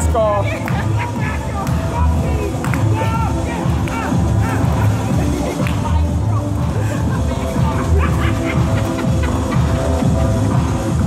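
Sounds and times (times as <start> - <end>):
loud music with heavy bass: 0.0 - 11.0.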